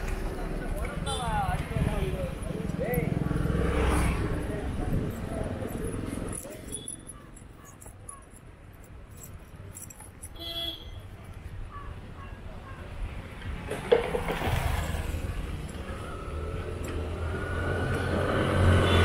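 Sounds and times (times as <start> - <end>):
people's voices: 0.0 - 8.4
motorbike passing: 2.0 - 6.5, 13.5 - 19.0.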